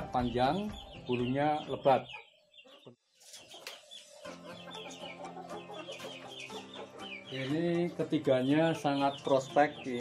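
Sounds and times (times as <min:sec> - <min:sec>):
chickens clucking faintly: 0:00.0 - 0:10.0.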